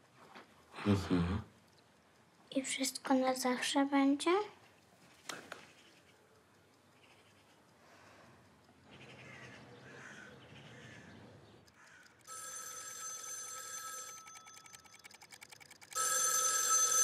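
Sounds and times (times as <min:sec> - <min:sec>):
telephone bell ringing: 0:12.2 - 0:17.0.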